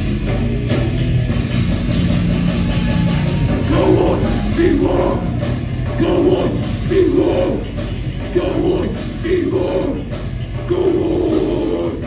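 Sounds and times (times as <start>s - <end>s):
live heavy metal band: 0.0s - 12.0s.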